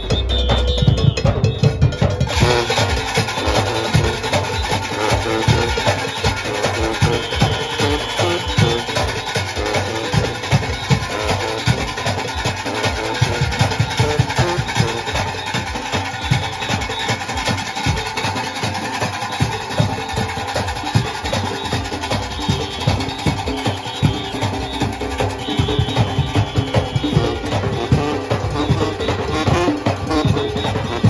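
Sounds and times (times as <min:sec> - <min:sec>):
big drums beating: 0:00.0 - 0:31.0
cowbells clanging: 0:00.0 - 0:31.0
horns playing: 0:00.0 - 0:31.0.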